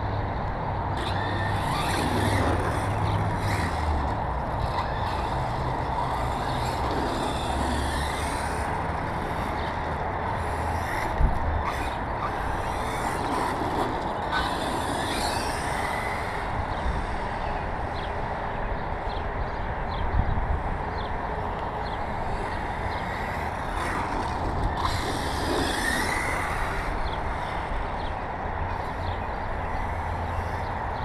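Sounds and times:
rc car motor whine: 0:00.9 - 0:21.2, 0:21.8 - 0:31.0.

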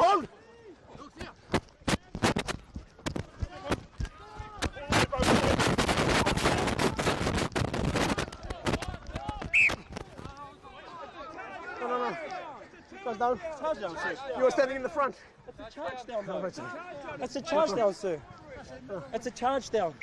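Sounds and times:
rapid cracking like clapping: 0:01.5 - 0:10.4
referee's whistle blast: 0:09.5 - 0:09.8.

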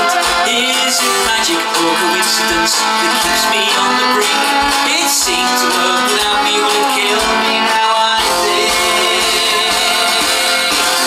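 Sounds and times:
folk-rock band playing: 0:00.0 - 0:11.0
mandolin: 0:00.0 - 0:11.0.

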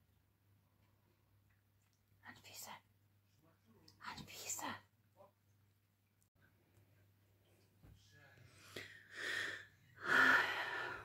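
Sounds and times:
person whispering softly: 0:02.2 - 0:04.9.

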